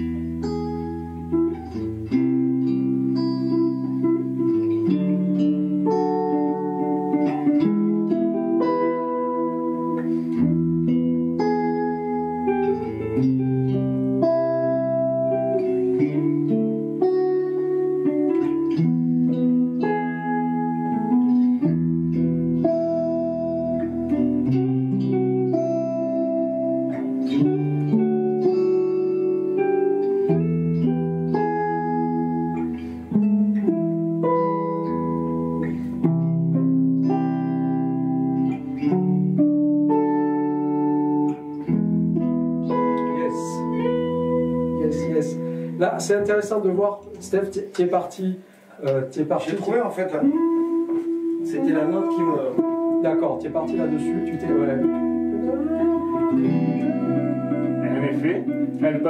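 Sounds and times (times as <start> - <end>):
electric guitars playing chords: 0.0 - 59.0
guitar melody: 0.0 - 59.0.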